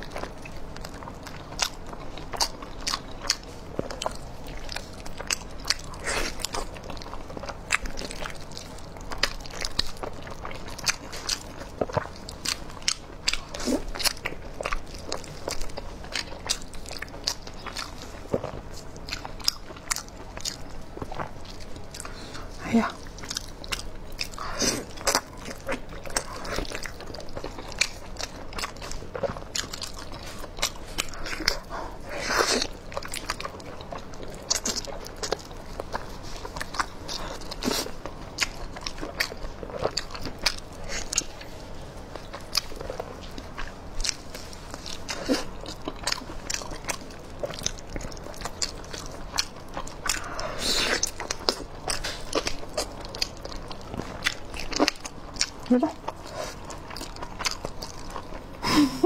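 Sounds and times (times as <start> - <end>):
close-miked chewing and gnawing: 0.0 - 59.0.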